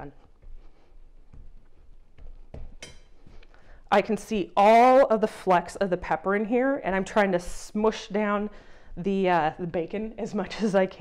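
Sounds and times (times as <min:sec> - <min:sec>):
hands patting dough on wood: 0:00.3 - 0:03.5.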